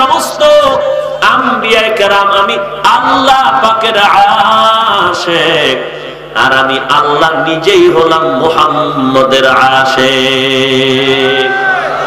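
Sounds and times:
man chanting a sermon: 0.0 - 11.5.

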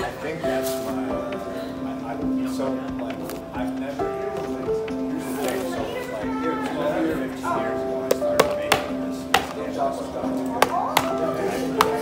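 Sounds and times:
background music: 0.0 - 12.0
people chatting: 0.0 - 12.0.

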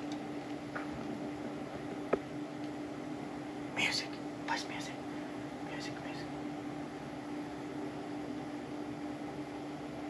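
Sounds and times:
steady low hum: 0.0 - 10.0
breathy whispered voice: 3.7 - 6.4.

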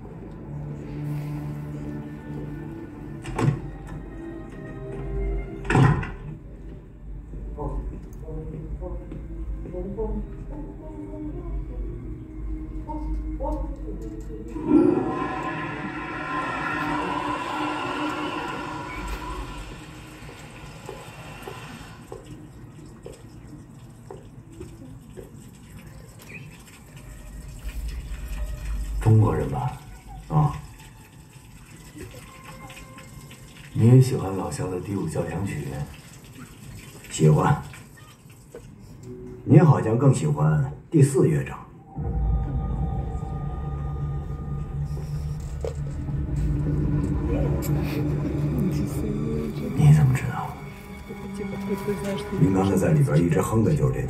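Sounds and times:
water running: 0.0 - 40.4, 42.0 - 54.0.

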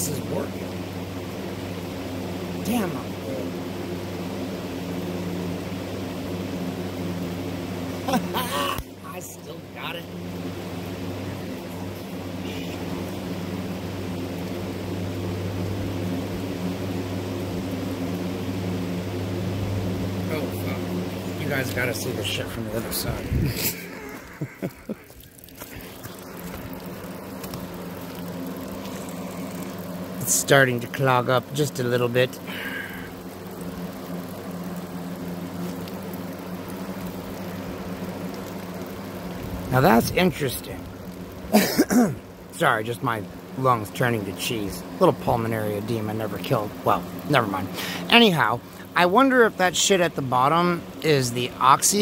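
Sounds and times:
faint hiss: 0.0 - 52.0
low mechanical hum: 0.0 - 52.0.

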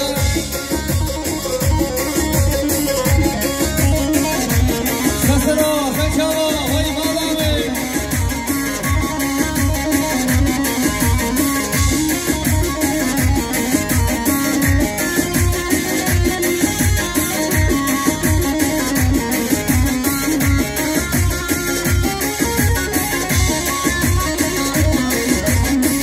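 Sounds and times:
electronic keyboard melody: 0.0 - 26.0
steady drum beat: 0.0 - 26.0.

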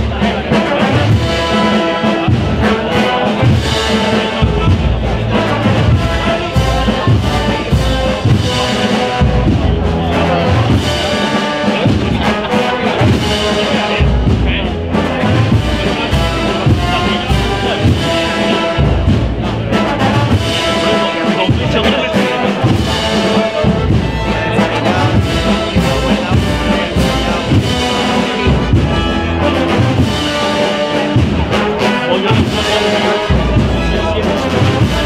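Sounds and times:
brass band playing slow march: 0.0 - 35.0
low drum beats: 0.0 - 35.0.

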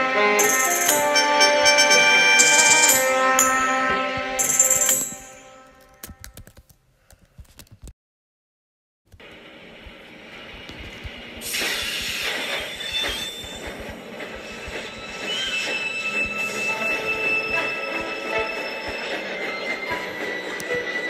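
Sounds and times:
train wheels squealing: 0.4 - 3.8, 4.4 - 5.3, 11.4 - 21.0.

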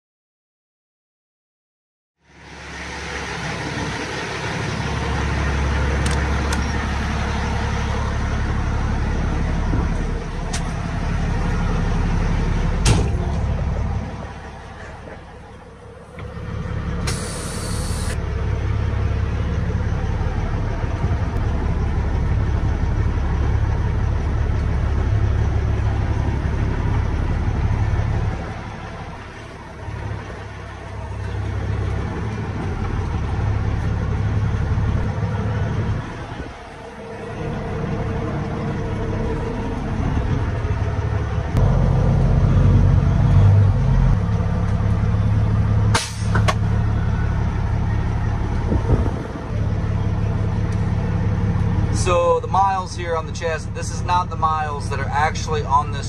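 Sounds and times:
diesel truck engine idling: 2.3 - 56.0
air hiss: 17.1 - 18.2.

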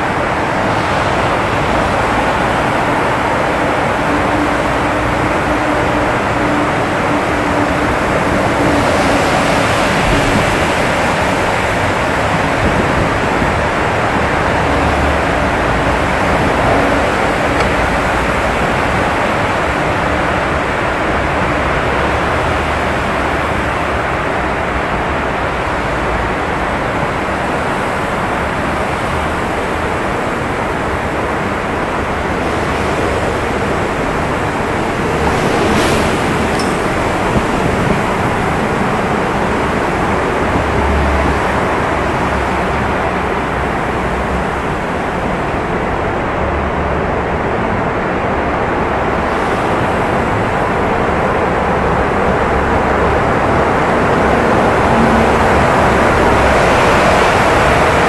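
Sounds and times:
passing traffic in tunnel: 0.0 - 58.0.

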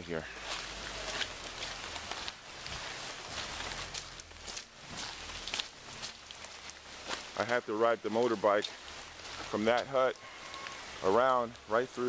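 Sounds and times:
footsteps squelching in mud: 0.0 - 11.1
outdoor hiss: 0.0 - 12.0.

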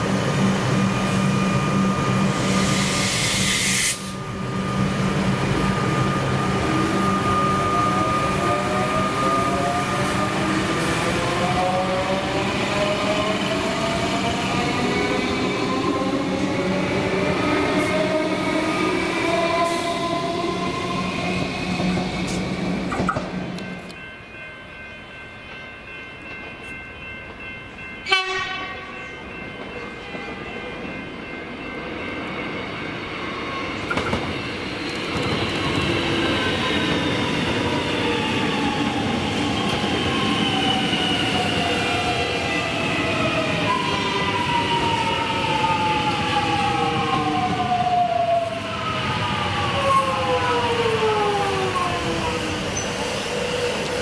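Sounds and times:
train wheel noise on rails: 0.0 - 54.0.

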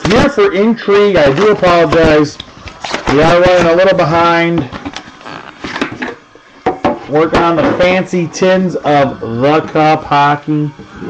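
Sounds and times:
tin rustling and scraping: 1.3 - 3.8, 4.4 - 6.2.

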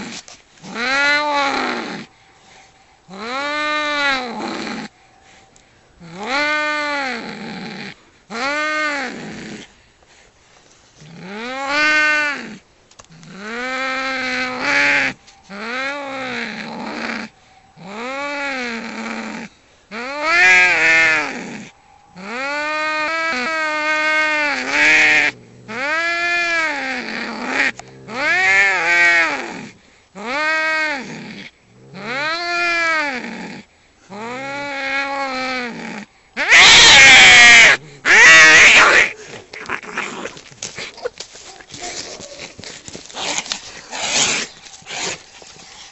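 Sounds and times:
cats yowling: 34.2 - 40.4
cat harsh screech: 36.4 - 39.2.

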